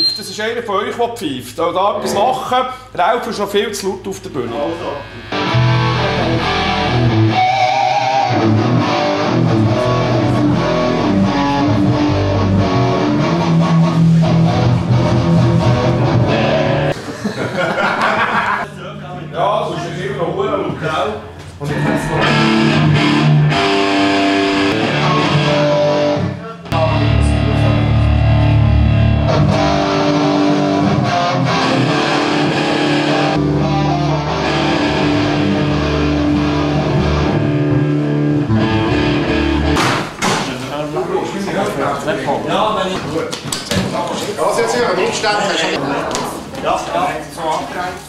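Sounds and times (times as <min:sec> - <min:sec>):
loud rock music with electric guitar: 0:05.1 - 0:17.0, 0:21.8 - 0:40.0
room chatter: 0:39.8 - 0:48.0.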